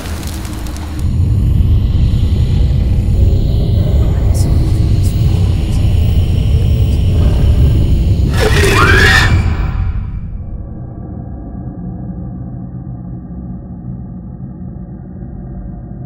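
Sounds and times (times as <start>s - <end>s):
deep rumbling drone: 0.0s - 16.0s
faint dark music: 0.0s - 16.0s.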